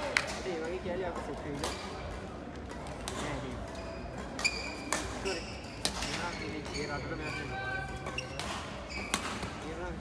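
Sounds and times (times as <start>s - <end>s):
background chatter: 0.0s - 10.0s
shoes squeaking on court floor: 3.2s - 10.0s.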